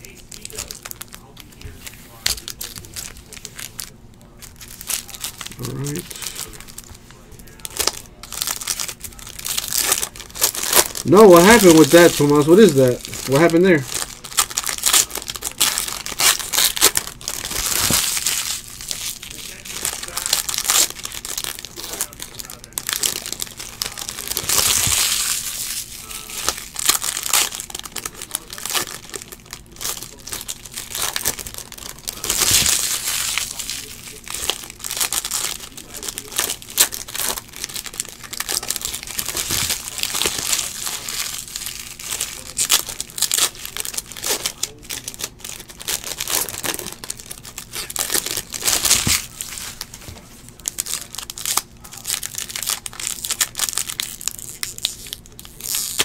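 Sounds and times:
foil wrappers crinkling and tearing: 0.0s - 56.0s.

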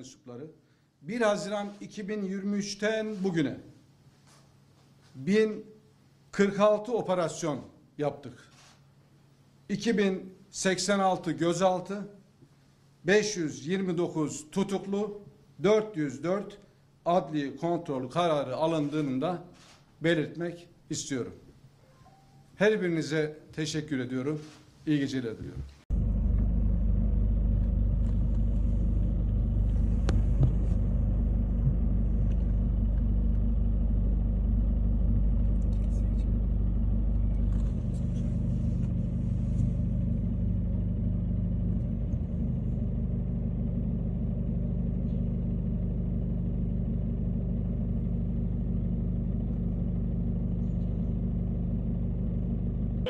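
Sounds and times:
vehicle engines rumbling: 25.9s - 53.0s.

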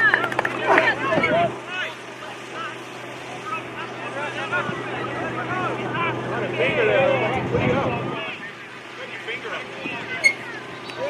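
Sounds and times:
voices shouting and calling out: 0.0s - 11.0s.

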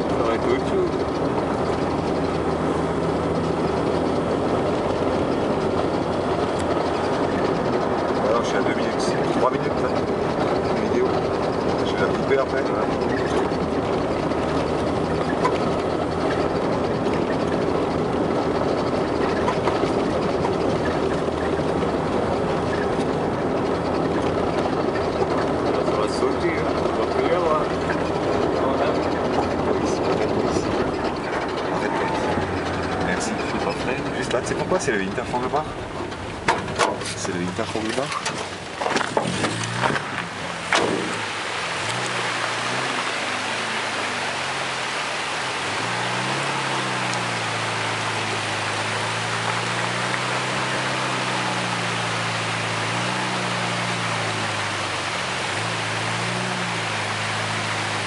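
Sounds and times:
car engine droning: 0.0s - 58.0s
tyre and road noise: 0.0s - 58.0s.

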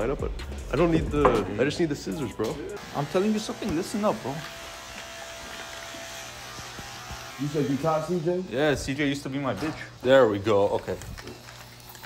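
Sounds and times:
electric hum and buzz: 2.7s - 12.0s.

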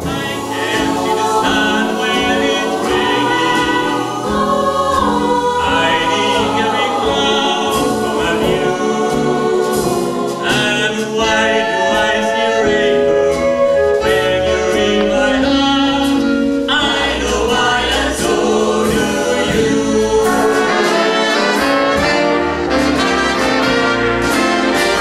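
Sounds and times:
jazz big band: 0.0s - 25.0s
mixed choir singing in harmony: 0.0s - 25.0s.

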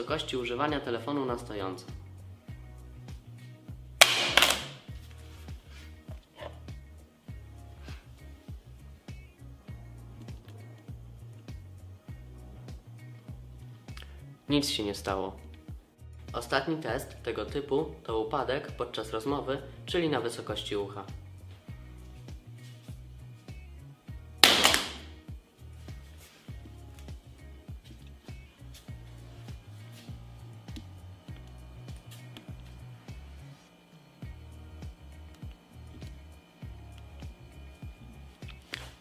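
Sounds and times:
background music: 0.0s - 39.0s
phone hitting the floor: 4.0s - 4.9s, 24.4s - 25.1s.

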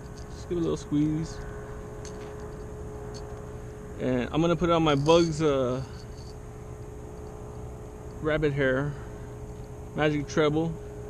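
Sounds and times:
distant motor rumble: 0.0s - 11.0s
faint steady hum: 0.0s - 11.0s.

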